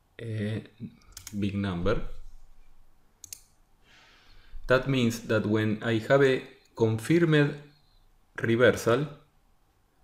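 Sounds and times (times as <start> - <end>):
faint room hiss: 0.0 - 10.0
computer mouse click: 1.0 - 1.4, 3.2 - 3.6.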